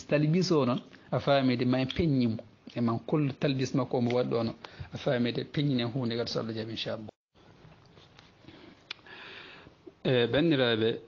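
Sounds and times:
man speaking: 0.0s - 7.2s, 10.0s - 11.0s.

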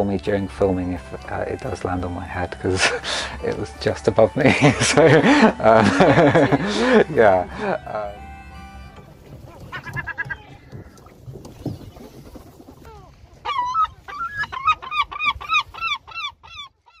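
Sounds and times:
large bird calling: 8.4s - 17.0s.

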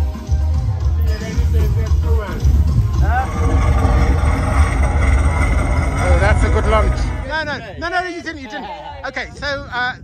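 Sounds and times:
people's voices: 0.0s - 10.0s
wind buffeting microphone: 1.3s - 10.0s.

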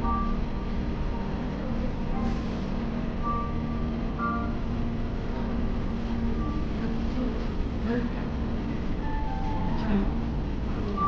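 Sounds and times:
low room hum: 0.0s - 11.0s
faint high beeps: 3.2s - 4.6s.

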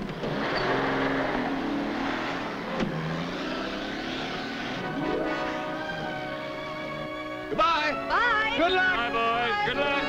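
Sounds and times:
car engine driving off: 0.0s - 7.5s.

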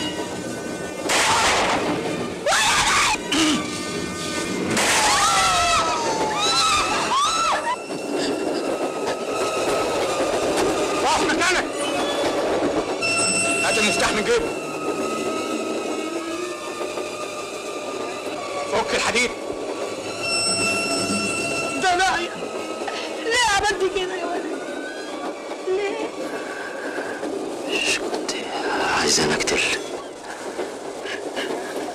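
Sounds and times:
train rattling rumble: 0.0s - 31.9s
passengers shouting: 2.4s - 3.7s, 4.8s - 7.9s.

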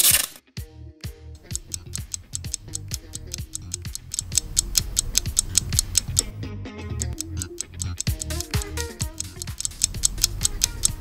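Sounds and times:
low bass notes: 0.9s - 11.0s
fast steady ticking: 1.4s - 6.3s, 7.0s - 11.0s.

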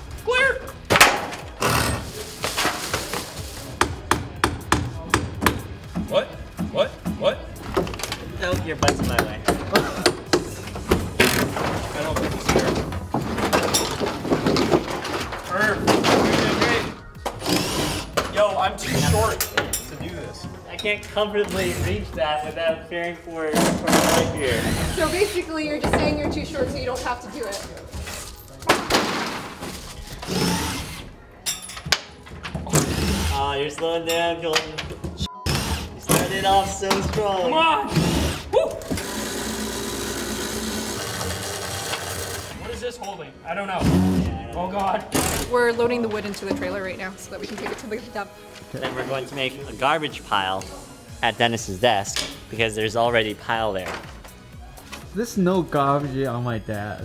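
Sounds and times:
hammer striking wood: 3.8s - 5.7s.

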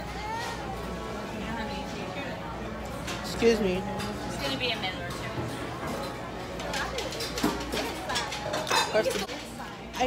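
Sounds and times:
people chattering: 0.0s - 10.0s
dishes and cutlery clinking: 2.9s - 10.0s.

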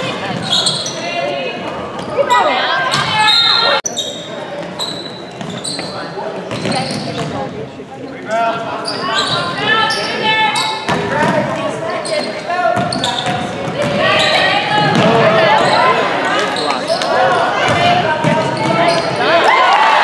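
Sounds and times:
sneakers squeaking: 0.0s - 19.4s
basketball bouncing on wooden floor: 14.8s - 15.2s.

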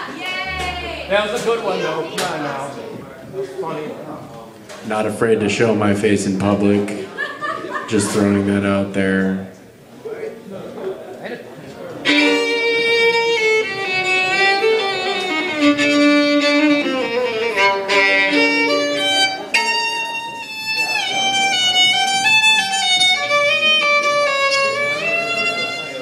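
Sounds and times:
solo violin melody: 0.4s - 1.9s, 12.0s - 26.0s.

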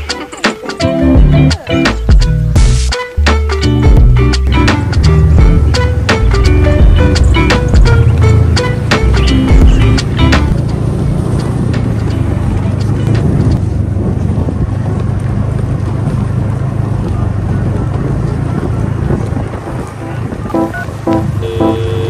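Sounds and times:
snowmobile engine running: 4.1s - 22.0s
wind on microphone: 9.6s - 21.4s
faint background music: 19.6s - 21.8s.

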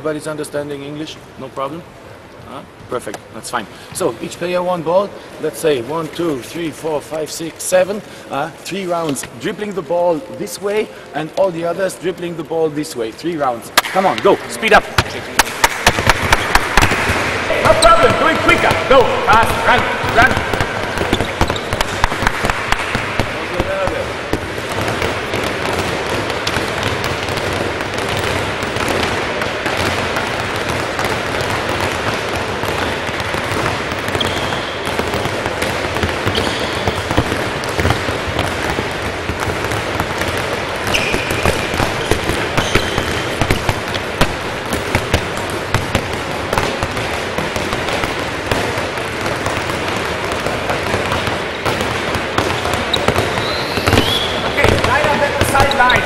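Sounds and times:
balls bouncing on wooden floor: 9.0s - 56.0s
shoes squeaking on floor: 17.6s - 21.9s, 33.4s - 35.2s, 36.0s - 38.9s, 40.8s - 45.0s, 51.1s - 56.0s.

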